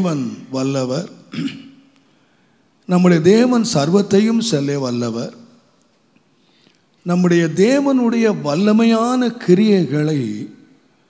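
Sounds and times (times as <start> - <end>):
man clearing throat: 1.3 - 1.8
man speaking: 2.9 - 5.4, 7.1 - 10.6.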